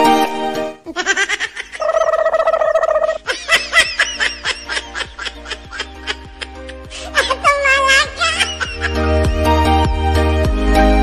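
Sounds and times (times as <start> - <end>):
high-pitched laughter: 0.9 - 9.1.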